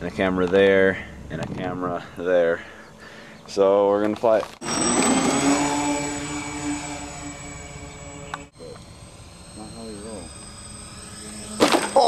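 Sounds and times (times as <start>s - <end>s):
model plane motor whine: 4.6s - 12.0s.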